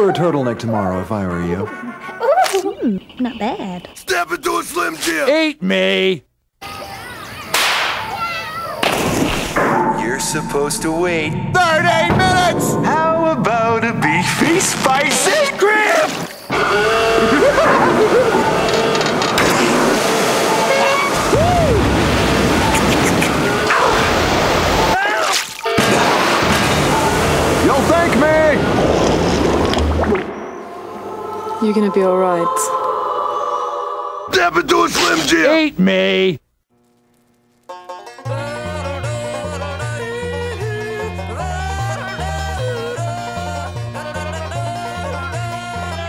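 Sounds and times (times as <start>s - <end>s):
loud booms or crashes: 8.8s - 14.7s
water rushing: 14.1s - 32.5s
person speaking: 34.3s - 36.4s.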